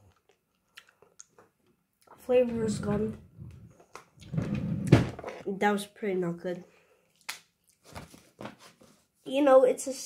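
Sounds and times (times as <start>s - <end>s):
low rustling noise: 2.3s - 5.2s.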